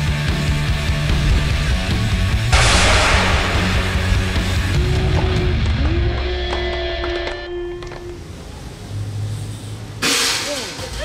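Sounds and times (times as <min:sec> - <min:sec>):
loud burst of noise: 0:02.5 - 0:05.8
rock music: 0:02.5 - 0:05.8.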